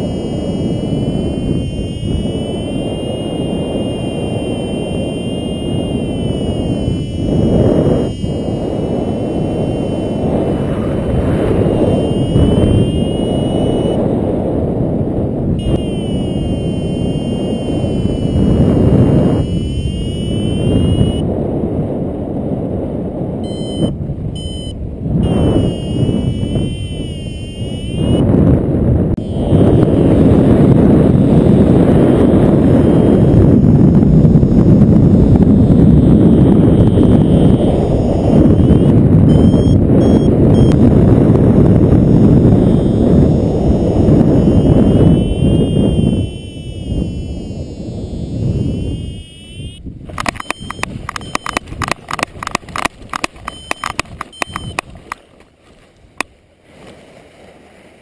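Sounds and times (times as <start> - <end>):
variometer beeping: 0.0 - 10.6, 11.4 - 14.1, 15.6 - 21.3, 23.4 - 28.3, 29.2 - 55.2
wind rushing over microphone: 0.0 - 58.0.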